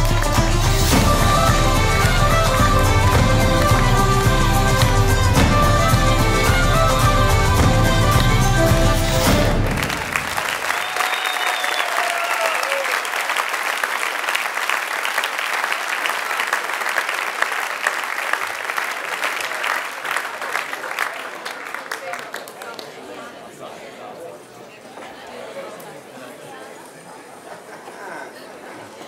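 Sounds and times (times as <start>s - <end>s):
music: 0.0s - 10.4s
audience applauding: 0.0s - 23.3s.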